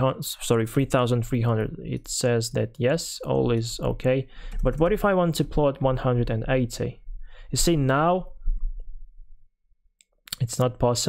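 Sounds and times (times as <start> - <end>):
person speaking: 0.0 - 8.4, 10.3 - 11.0.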